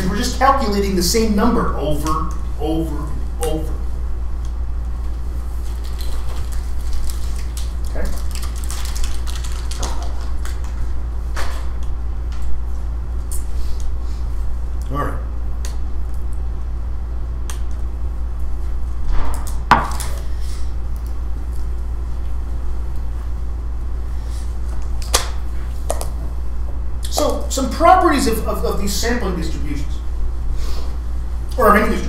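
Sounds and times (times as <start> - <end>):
low electrical hum: 0.0 - 32.0
low room rumble: 0.0 - 32.0.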